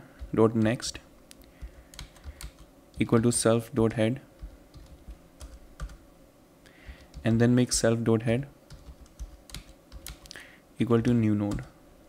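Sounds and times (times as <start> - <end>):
computer keyboard typing: 1.6 - 3.4, 4.4 - 6.0, 6.8 - 7.4, 8.7 - 10.4.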